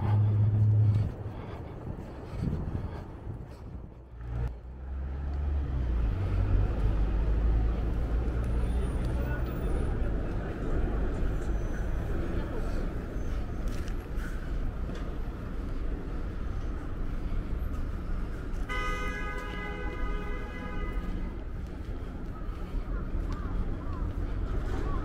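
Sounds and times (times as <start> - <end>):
traffic engine rumble: 0.0 - 25.0.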